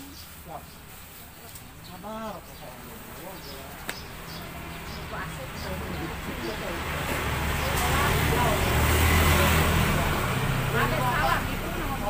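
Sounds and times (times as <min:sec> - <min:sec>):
people talking: 0:00.0 - 0:12.0
car driving past: 0:04.3 - 0:12.0.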